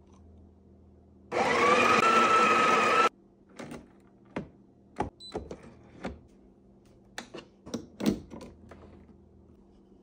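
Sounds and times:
coffee grinder motor whine: 1.3s - 3.1s.

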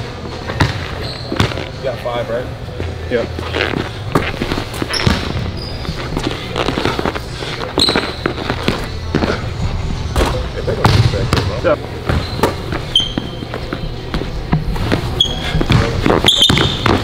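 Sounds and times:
sneakers squeaking: 0.0s - 17.0s.

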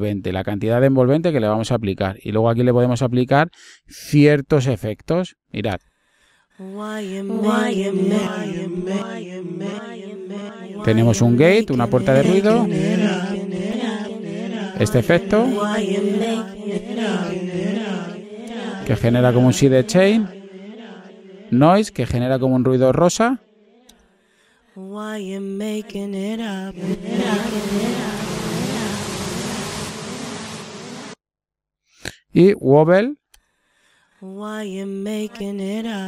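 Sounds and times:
chant-like vocal note with echo: 6.6s - 23.1s, 24.7s - 31.2s, 34.2s - 36.0s
hiss: 27.3s - 31.2s.

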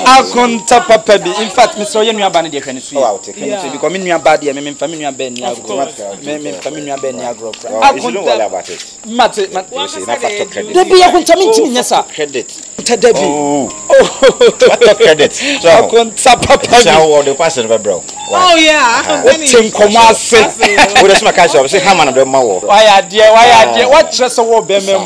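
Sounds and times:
high-pitched insect chirring: 0.0s - 25.0s
people talking: 0.0s - 25.0s.

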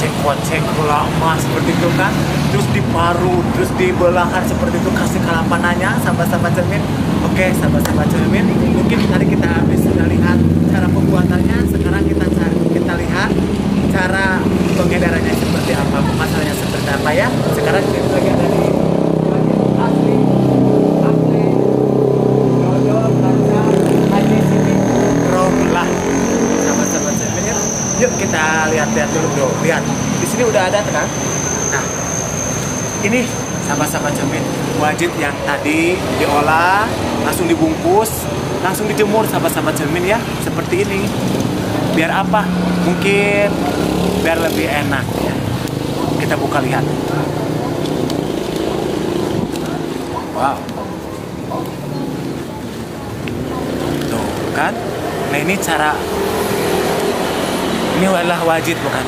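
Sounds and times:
motorcycles and cars passing: 0.0s - 59.0s.

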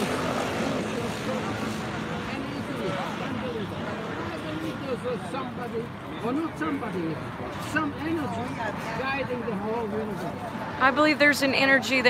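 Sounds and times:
murmured voices: 0.0s - 12.0s
traffic noise: 0.0s - 12.0s.

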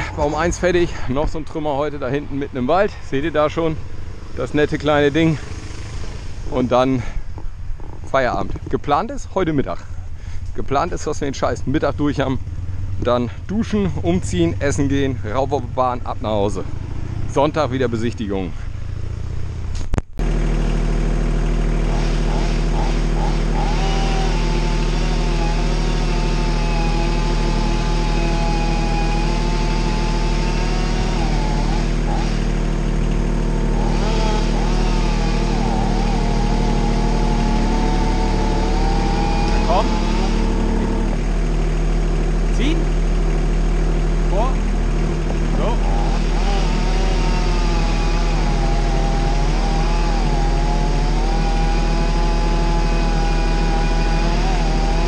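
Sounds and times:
truck engine running: 0.0s - 55.0s.

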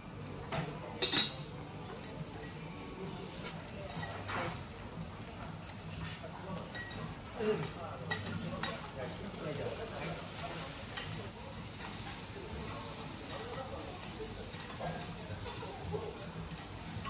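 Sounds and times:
rice sizzling on a griddle: 0.2s - 17.0s.

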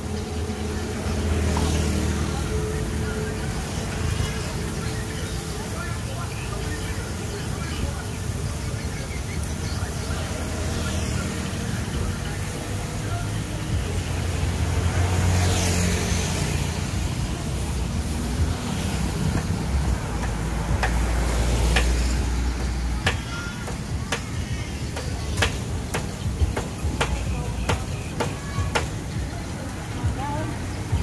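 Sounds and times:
road traffic rumble: 0.0s - 31.0s.

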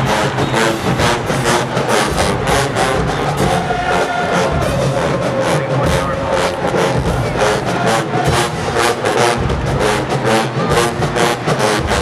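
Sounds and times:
driving drum beat: 0.0s - 12.0s
marching band brass: 0.0s - 12.0s.

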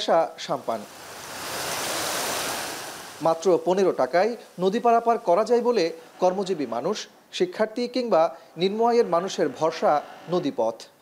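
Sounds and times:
rushing river water: 0.0s - 10.7s.

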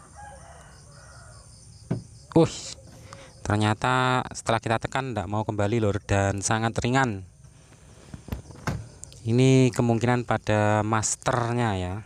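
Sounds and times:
distant rooster crowing: 0.0s - 1.8s.

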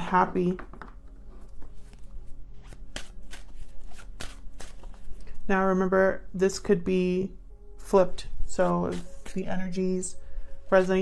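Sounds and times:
faint background music: 0.0s - 11.0s
cards being shuffled: 0.6s - 5.4s, 8.6s - 9.6s.

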